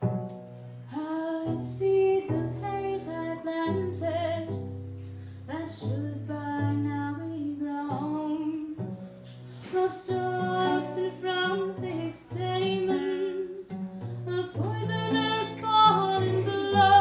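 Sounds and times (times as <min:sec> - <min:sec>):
bowed cello: 0:00.0 - 0:17.0
woman singing: 0:00.9 - 0:04.6, 0:05.5 - 0:08.8, 0:09.6 - 0:17.0.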